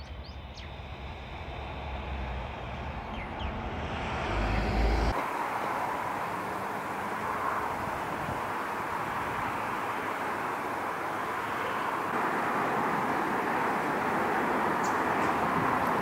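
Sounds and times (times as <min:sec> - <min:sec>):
bird chirps: 0:00.0 - 0:01.3, 0:02.9 - 0:03.8
rushing noise: 0:00.0 - 0:16.0.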